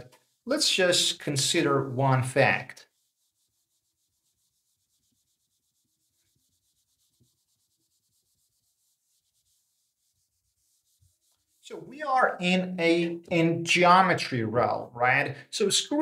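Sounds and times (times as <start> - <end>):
whiteboard eraser rubbing: 0.0 - 13.4.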